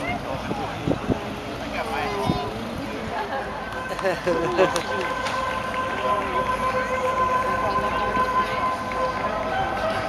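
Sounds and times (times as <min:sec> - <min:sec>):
distant spectators murmuring: 0:00.0 - 0:10.0
steady droning tone: 0:02.7 - 0:10.0.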